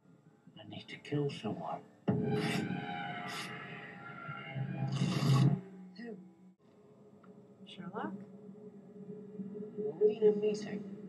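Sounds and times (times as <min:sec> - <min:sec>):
low soundtrack drone: 0:02.0 - 0:11.0.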